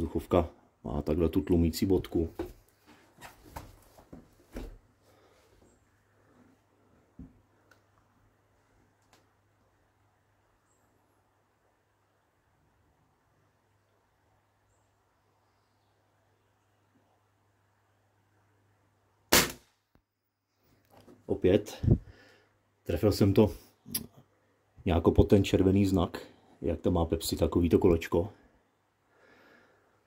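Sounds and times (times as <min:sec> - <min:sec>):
air rifle shot crack: 0:19.3 - 0:19.8.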